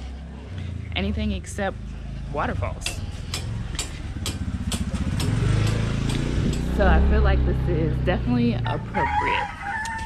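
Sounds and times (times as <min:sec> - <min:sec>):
low engine hum: 0:00.0 - 0:09.4.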